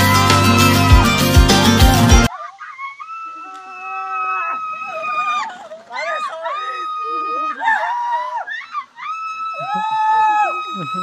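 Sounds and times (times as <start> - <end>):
people screaming with thrill: 2.3 - 11.0.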